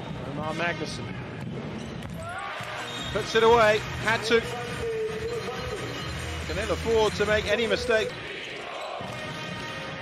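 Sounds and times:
arena crowd noise: 0.4s - 10.0s.

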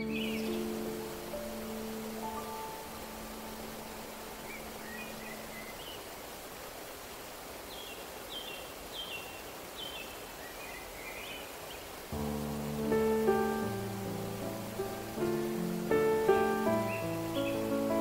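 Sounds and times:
piano chord: 0.0s - 5.3s, 12.2s - 18.0s
bird chirping: 0.0s - 6.2s, 7.7s - 12.0s, 14.8s - 18.0s
waterfall rushing: 0.0s - 18.0s.

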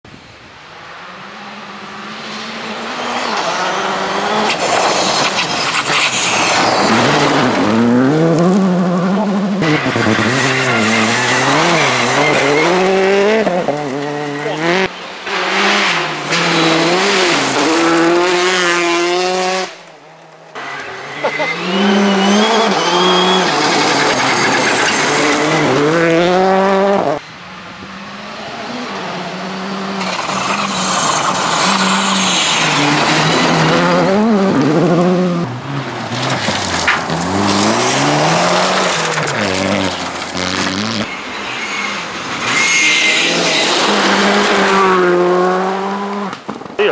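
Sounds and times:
gravel and tyre noise: 0.0s - 46.9s
rally car engines revving: 1.2s - 46.9s.

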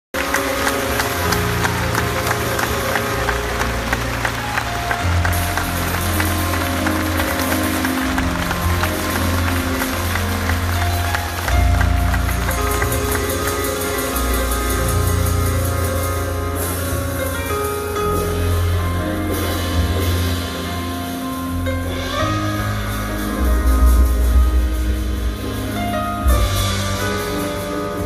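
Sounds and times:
audience clapping: 0.1s - 16.7s
double bass notes: 0.2s - 28.0s
jazz quartet playing: 0.2s - 28.0s.

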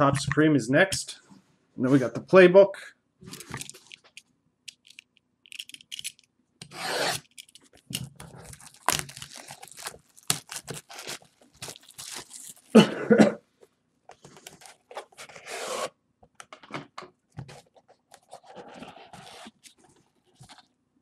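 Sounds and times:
plastic wrap crinkling and tearing: 7.1s - 12.8s.

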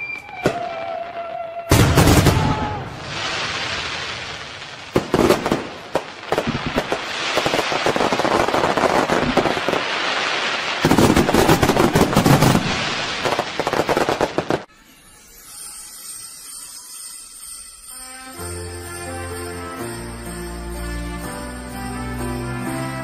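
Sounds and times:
fireworks bangs and crackling: 0.0s - 14.7s
fireworks fizzing rush: 1.7s - 14.7s.

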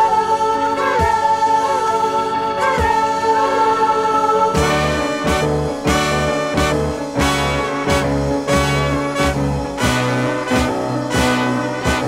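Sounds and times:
band backing: 0.0s - 12.0s
held note in vocal harmony: 0.0s - 12.0s.

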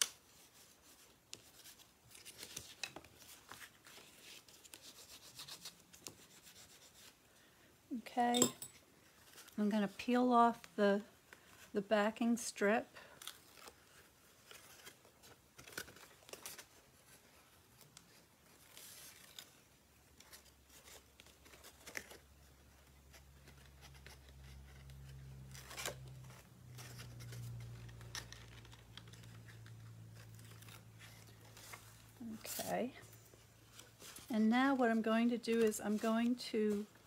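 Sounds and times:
paper rustling: 0.0s - 7.2s, 13.0s - 37.0s
tape backing peeling: 13.1s - 32.7s.

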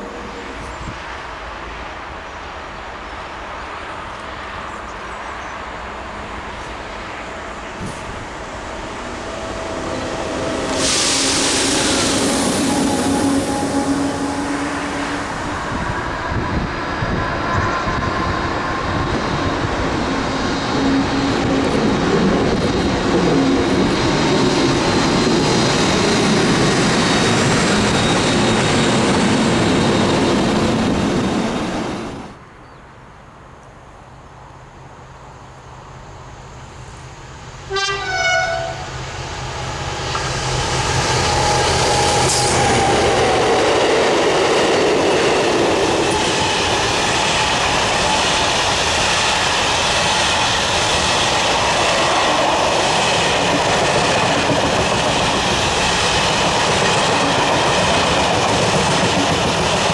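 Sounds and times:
distant train rumble: 0.0s - 32.6s, 33.2s - 59.9s
train wheel and rail noise: 0.0s - 59.9s.

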